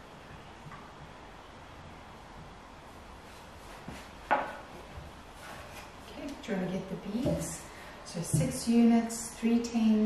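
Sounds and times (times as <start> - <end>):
wooden tray knocking and rubbing: 3.8 - 5.8.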